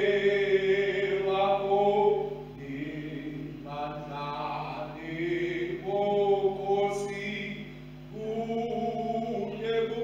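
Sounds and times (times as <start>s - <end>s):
slow sung hymn: 0.0s - 10.0s.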